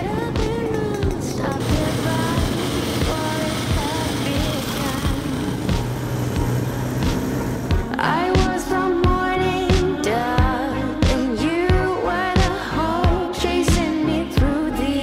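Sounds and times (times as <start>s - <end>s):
motorcycle engines passing: 0.0s - 8.9s
pop song with singing: 0.0s - 15.0s.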